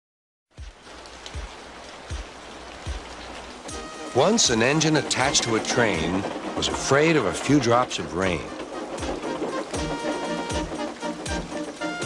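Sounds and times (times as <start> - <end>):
rain falling: 0.5 - 12.0.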